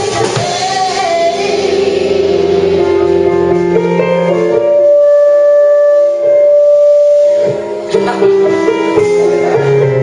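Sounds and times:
live soul band playing: 0:00.0 - 0:10.0.

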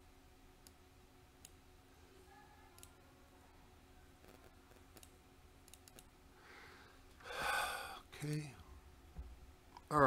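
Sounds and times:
man breathing heavily: 0:06.4 - 0:08.1.

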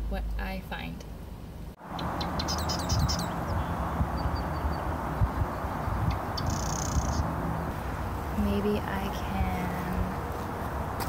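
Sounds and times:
steady rushing outdoor noise: 0:01.2 - 0:11.0
small birds chirping: 0:01.8 - 0:11.0.

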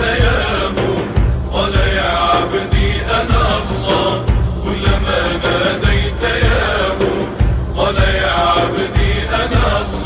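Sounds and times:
heavy low drum beats: 0:00.0 - 0:10.0
voices singing devotional song: 0:00.0 - 0:10.0.

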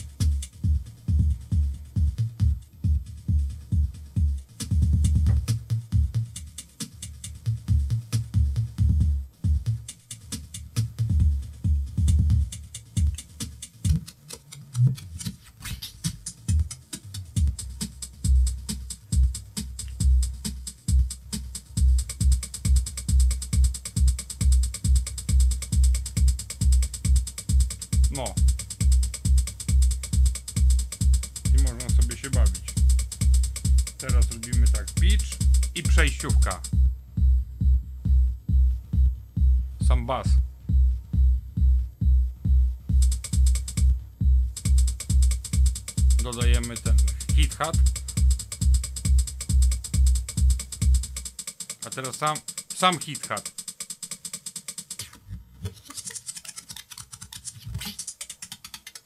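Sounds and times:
hi-hat ticking: 0:00.0 - 0:55.2, 0:55.8 - 0:59.0
drum machine kick and bass: 0:00.0 - 0:55.3, 0:56.0 - 0:59.0.

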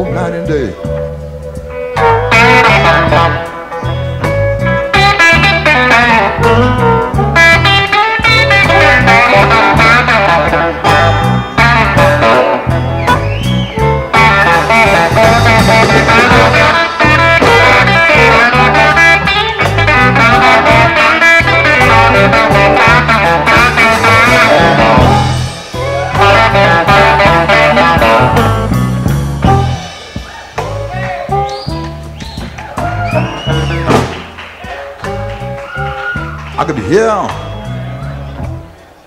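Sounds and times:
slow blues guitar: 0:00.0 - 0:39.0.

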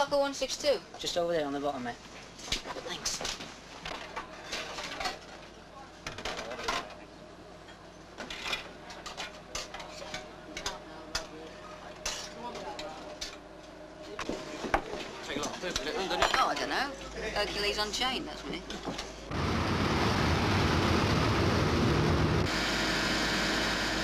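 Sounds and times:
cutlery clinking on metal trays: 0:03.9 - 0:05.4, 0:07.6 - 0:11.4, 0:12.0 - 0:13.4, 0:15.4 - 0:16.8.

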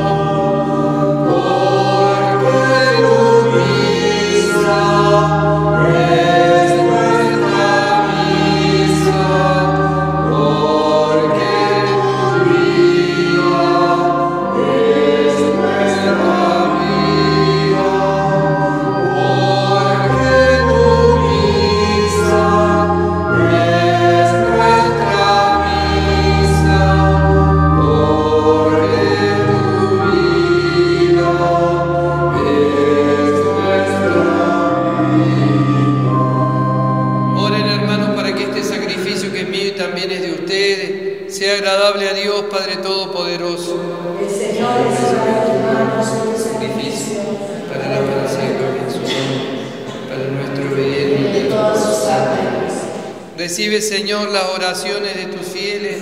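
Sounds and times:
low held accompaniment notes: 0:00.0 - 0:41.4, 0:42.0 - 0:55.8
choir singing a hymn: 0:00.0 - 0:56.0.

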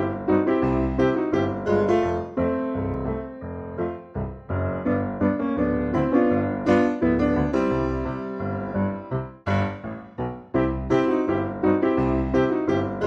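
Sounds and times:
piano notes and chords: 0:00.0 - 0:13.0.

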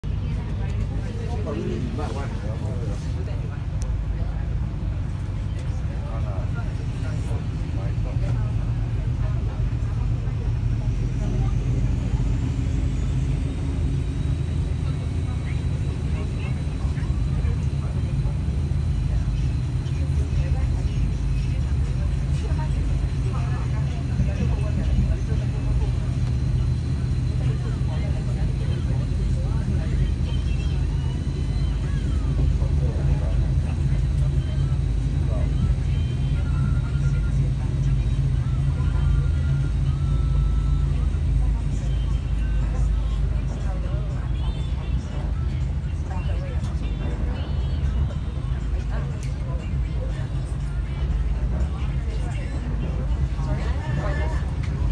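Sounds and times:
passenger train rumble from inside: 0:00.0 - 0:54.9.

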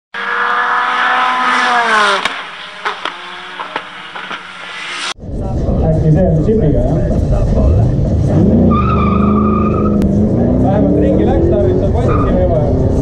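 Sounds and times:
race car engine: 0:00.1 - 0:13.0.

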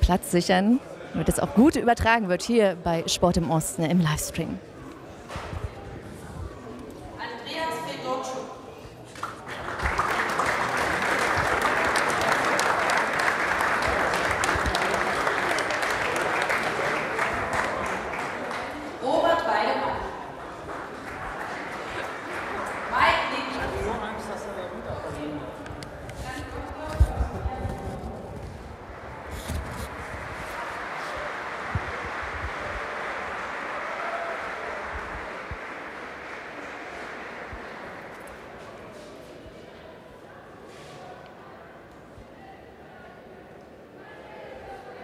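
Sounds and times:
people applauding: 0:09.2 - 0:19.4, 0:20.2 - 0:24.6, 0:28.9 - 0:39.0.

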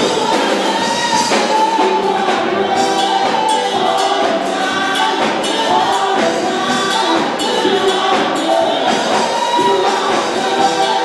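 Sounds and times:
church band with percussion: 0:00.0 - 0:11.0
gospel choir singing: 0:00.0 - 0:11.0.

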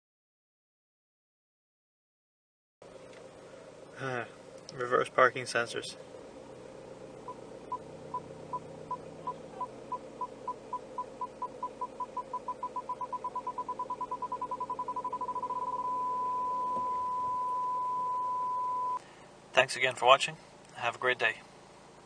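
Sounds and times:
car engine idling: 0:02.8 - 0:22.0
parking sensor beeping: 0:07.2 - 0:19.0.

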